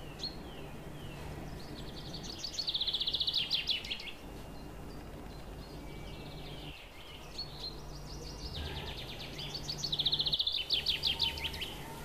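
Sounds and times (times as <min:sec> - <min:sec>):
bird singing with trills: 0:00.0 - 0:12.0
low steady hum: 0:00.0 - 0:12.0.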